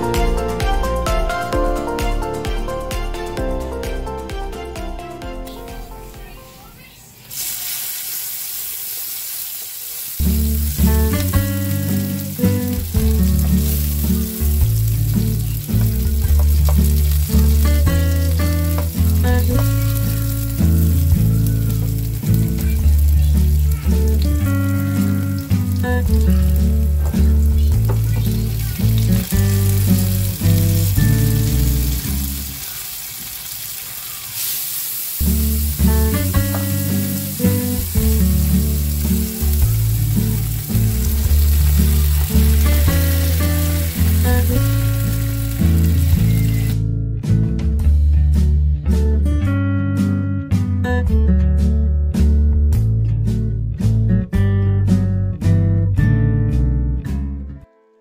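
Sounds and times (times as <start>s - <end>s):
background music with steady beat: 0.0s - 6.9s, 10.3s - 32.4s, 35.2s - 57.4s
garlic and onion sizzling in oil: 7.2s - 46.8s.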